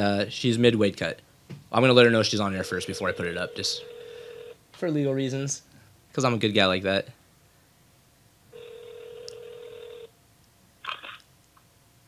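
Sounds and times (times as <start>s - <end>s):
telephone ringback tone: 2.6s - 4.6s, 8.5s - 10.1s.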